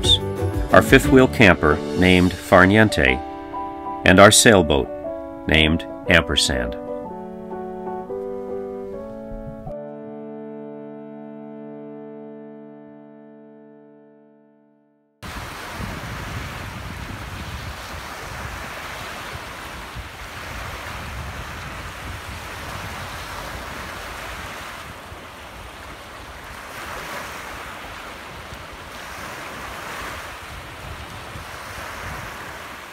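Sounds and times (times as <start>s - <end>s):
wind buffeting microphone: 9.2s - 9.7s, 15.2s - 32.9s
small waves washing on sand: 15.2s - 32.9s.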